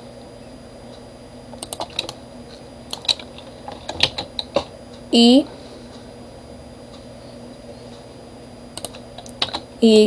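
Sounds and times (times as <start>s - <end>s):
keyboard keys clicking: 1.6s - 2.2s, 2.9s - 4.7s, 8.8s - 9.7s.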